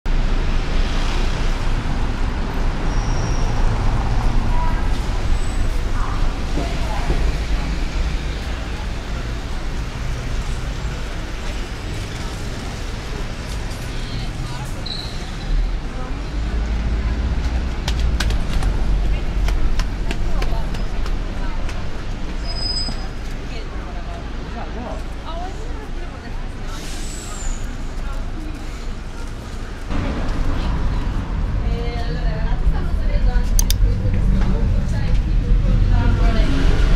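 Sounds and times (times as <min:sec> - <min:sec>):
road traffic rumble: 0:00.1 - 0:36.9
voices of passers-by: 0:00.2 - 0:36.9
bus air brakes hissing: 0:26.7 - 0:27.9.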